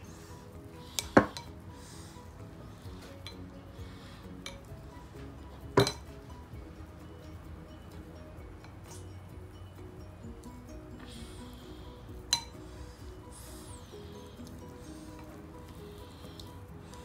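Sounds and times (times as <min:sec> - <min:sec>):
soft background music: 0:00.0 - 0:17.0
spoon clinking against bowl: 0:05.8 - 0:06.1, 0:12.3 - 0:12.6.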